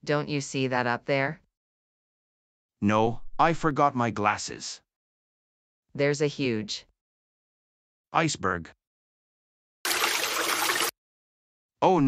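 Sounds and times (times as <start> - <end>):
rushing water: 9.9 - 10.9.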